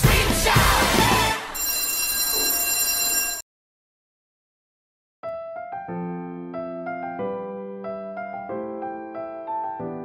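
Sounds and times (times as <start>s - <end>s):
high electronic ringing tone: 1.5s - 3.4s.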